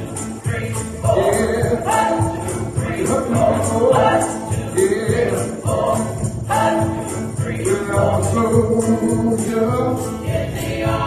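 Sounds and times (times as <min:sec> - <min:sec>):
band with jingling percussion: 0:00.0 - 0:11.0
group singing gospel song: 0:00.0 - 0:11.0.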